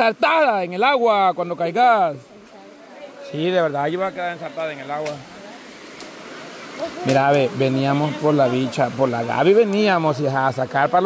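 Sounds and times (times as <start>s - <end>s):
river flowing: 0.0s - 11.0s.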